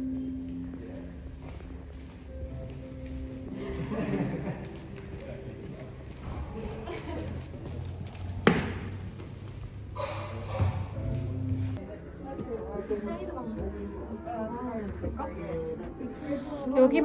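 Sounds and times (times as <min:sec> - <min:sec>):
background music: 0:00.0 - 0:17.0
faint indistinct voices: 0:00.0 - 0:17.0.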